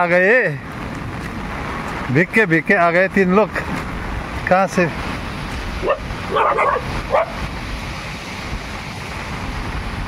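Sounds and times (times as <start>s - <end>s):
heavy rain: 0.0s - 10.0s
dog barking: 5.8s - 7.4s.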